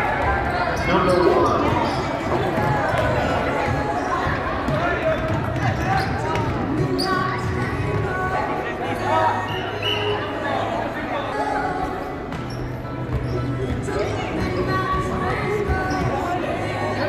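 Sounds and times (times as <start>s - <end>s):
spectators' voices: 0.0s - 17.0s.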